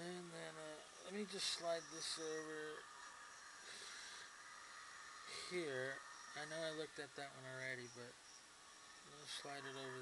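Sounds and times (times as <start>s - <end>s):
low hiss: 0.0s - 10.0s.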